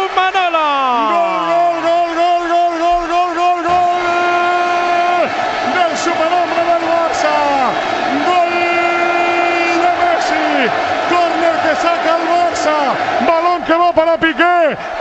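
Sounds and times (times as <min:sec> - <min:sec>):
football commentator shouting: 0:00.0 - 0:14.9.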